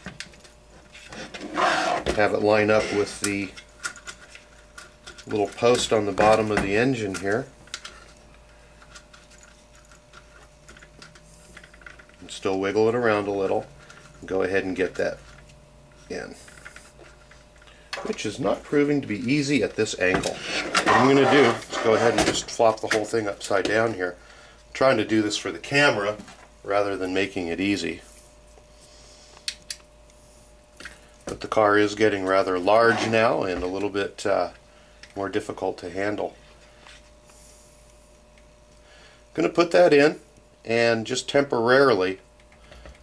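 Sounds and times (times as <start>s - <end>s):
faint steady hum: 0.0s - 43.0s.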